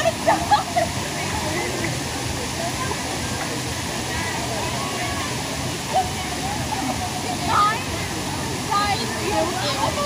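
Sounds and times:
pool water splashing: 0.0s - 10.0s
running water rushing: 0.0s - 10.0s
children's voices: 4.1s - 10.0s.

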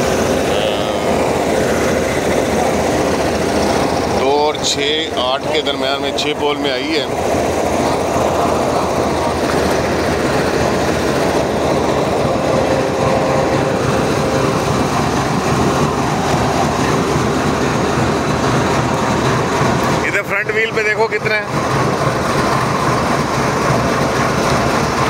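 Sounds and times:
locomotive engine idling: 0.0s - 25.0s.

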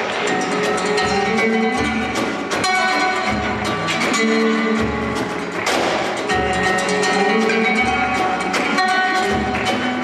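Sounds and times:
small band playing live: 0.0s - 10.0s.

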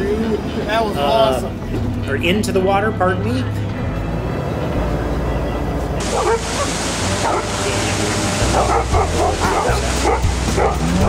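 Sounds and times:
vehicle engine droning: 0.0s - 11.0s
water rushing: 4.0s - 11.0s
dogs barking and yipping: 6.0s - 11.0s.

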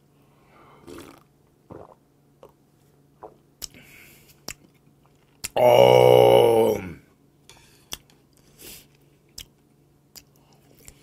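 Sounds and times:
person sipping from a bowl: 0.8s - 2.5s
throaty gulp: 0.8s - 2.5s.

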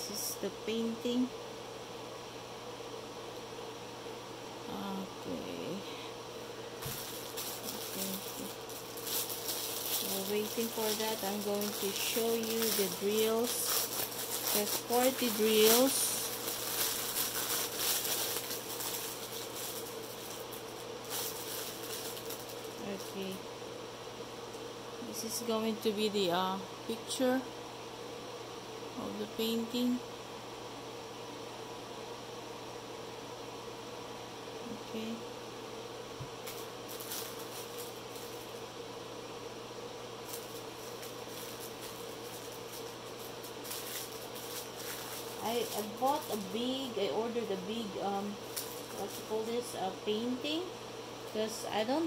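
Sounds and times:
faint steady hum: 0.0s - 52.0s
plastic bag rustling: 6.7s - 23.4s, 36.4s - 38.6s, 40.2s - 51.6s.

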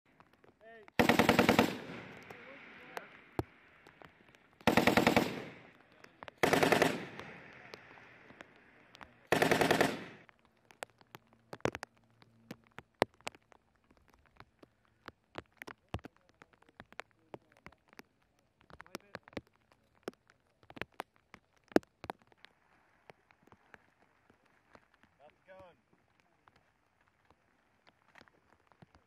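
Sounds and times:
machine gun bursts: 1.0s - 2.1s, 4.6s - 5.6s, 6.4s - 7.5s, 9.3s - 10.2s.

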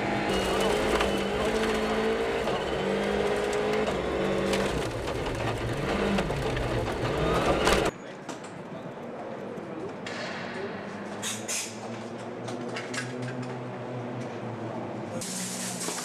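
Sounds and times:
rally car engine running hard: 0.0s - 7.9s
gravel crunching: 0.3s - 7.9s.

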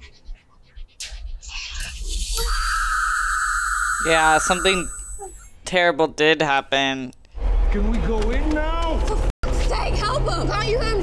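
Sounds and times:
high-pitched ringing whine: 1.8s - 5.6s.

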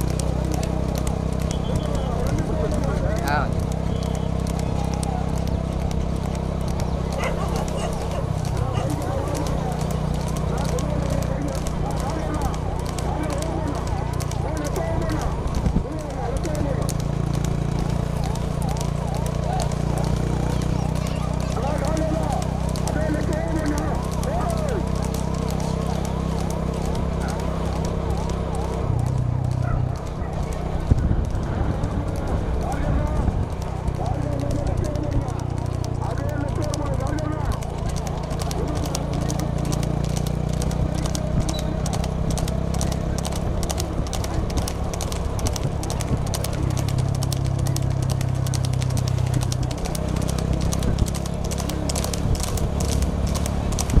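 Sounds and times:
people shouting: 0.0s - 53.9s
hooves clip-clopping on asphalt: 0.0s - 54.0s
low engine hum: 0.0s - 54.0s.

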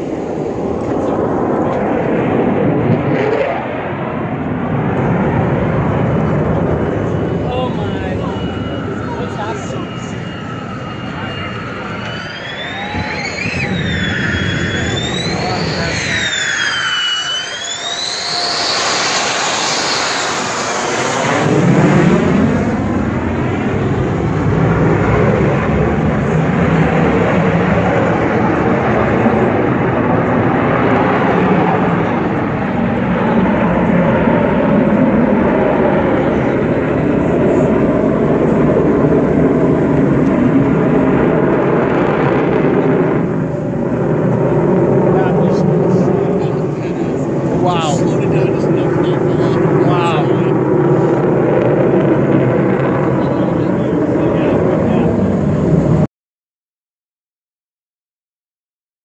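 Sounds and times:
jet roaring overhead: 0.0s - 56.1s.

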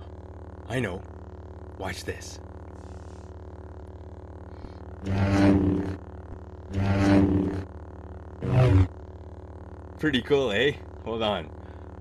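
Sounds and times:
electric hum: 0.0s - 12.0s.

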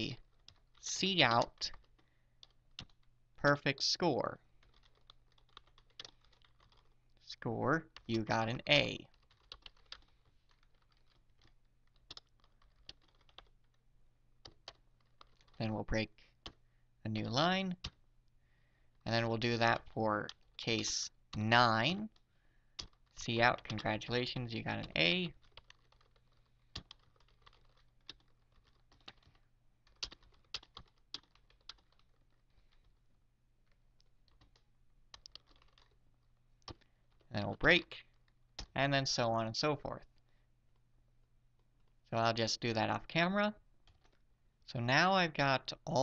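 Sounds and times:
computer keyboard keystrokes: 0.1s - 3.1s, 4.6s - 7.0s, 9.1s - 13.8s, 14.4s - 15.6s, 17.7s - 18.0s, 22.8s - 24.1s, 24.8s - 32.9s, 33.7s - 36.0s, 36.6s - 37.3s, 38.2s - 38.8s, 43.8s - 44.2s.

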